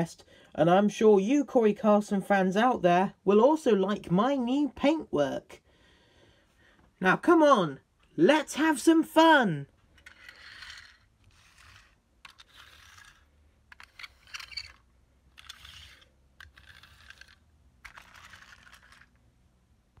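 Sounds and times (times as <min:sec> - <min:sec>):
plastic toy vehicles rustling and clicking: 0:09.8 - 0:19.3.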